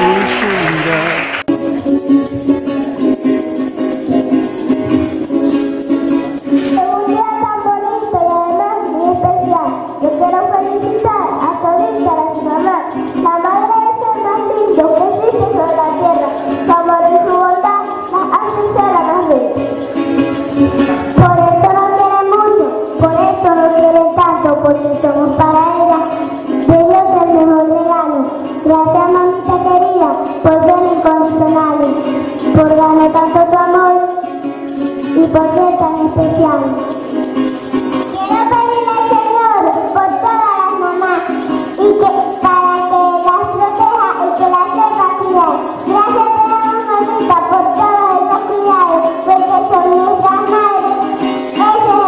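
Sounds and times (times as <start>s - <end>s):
child singing into a microphone: 0.0s - 1.3s, 6.4s - 19.9s, 20.6s - 37.2s, 37.9s - 52.0s
maracas shaking: 0.0s - 52.0s
small guitar strummed: 0.0s - 52.0s.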